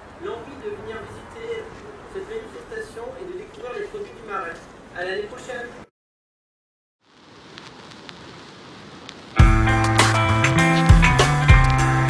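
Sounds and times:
faint steady hiss: 0:07.0 - 0:10.8.

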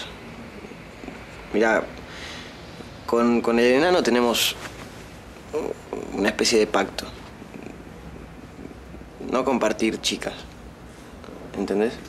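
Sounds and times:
low room tone rumble: 0:00.0 - 0:12.0.

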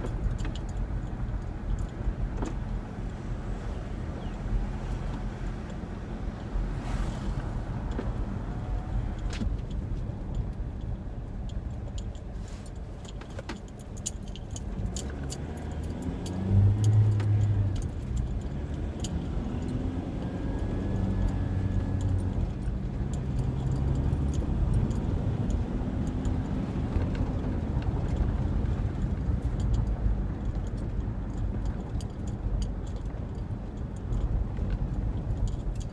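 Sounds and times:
small rattling clicks: 0:00.0 - 0:03.2, 0:09.1 - 0:19.8, 0:21.2 - 0:35.9
car engine and road hum: 0:00.0 - 0:35.9.

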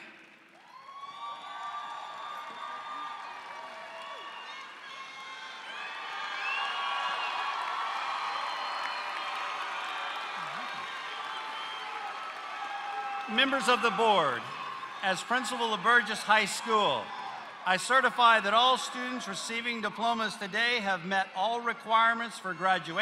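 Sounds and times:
crowd cheering and applauding: 0:00.0 - 0:20.8
crowd whoops and shouts: 0:00.5 - 0:20.5.

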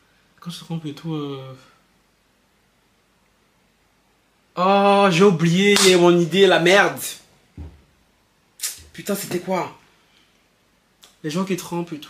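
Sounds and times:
man speaking: 0:00.4 - 0:01.8, 0:04.6 - 0:07.3, 0:08.6 - 0:09.8, 0:11.2 - 0:12.0
soft low thump: 0:07.6 - 0:07.9.

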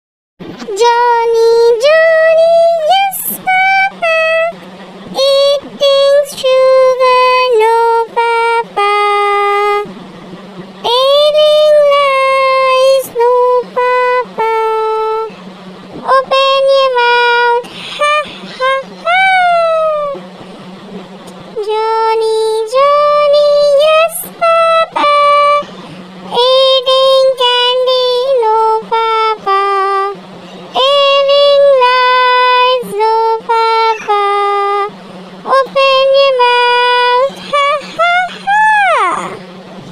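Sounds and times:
child singing long notes: 0:00.7 - 0:09.9, 0:10.8 - 0:20.2, 0:21.6 - 0:39.5.

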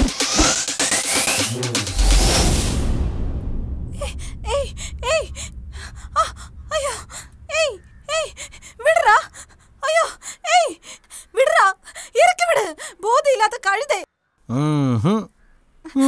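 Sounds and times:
woman's strained cries and grunts: 0:04.0 - 0:13.5.

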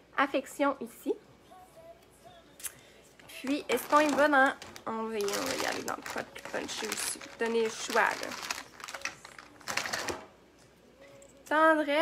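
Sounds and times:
plastic containers clattering: 0:03.5 - 0:10.3.

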